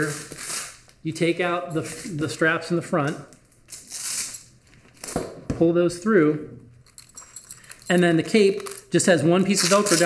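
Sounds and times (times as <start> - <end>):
strap sliding through velcro: 0.0 - 0.9, 3.7 - 4.4, 9.6 - 10.0.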